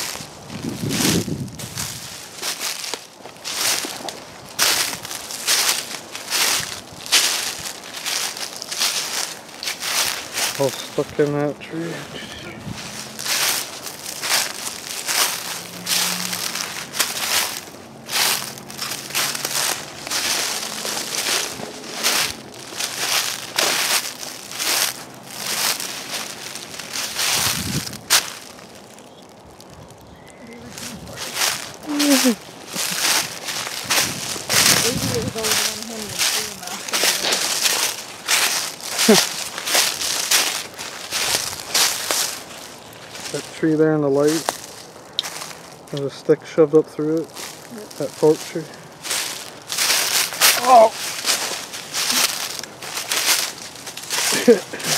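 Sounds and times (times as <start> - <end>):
footsteps crunching dry leaves: 0.0 - 54.9.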